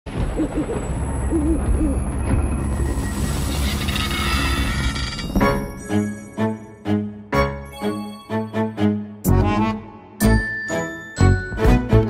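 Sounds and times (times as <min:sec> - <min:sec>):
tinkling music: 0:02.9 - 0:09.0, 0:10.2 - 0:12.0.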